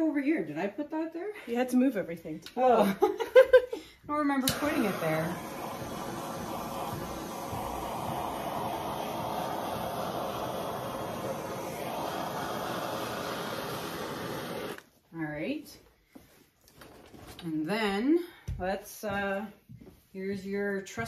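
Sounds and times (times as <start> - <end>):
butane torch hissing: 4.4 - 14.9.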